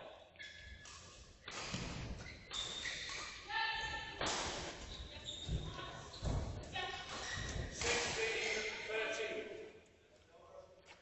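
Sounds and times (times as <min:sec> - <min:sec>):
shoes squeaking on court floor: 0:00.4 - 0:03.5, 0:04.6 - 0:07.9.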